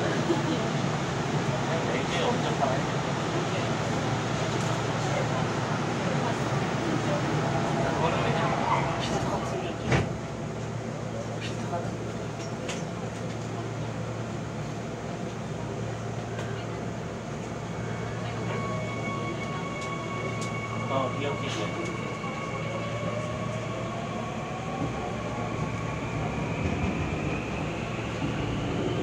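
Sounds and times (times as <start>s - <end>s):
train rumble: 0.0s - 29.0s.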